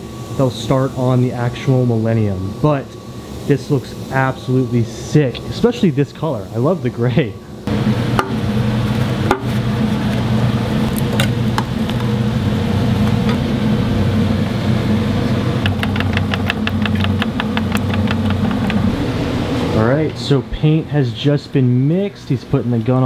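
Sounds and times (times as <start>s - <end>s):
machine motor hum: 7.6s - 22.8s.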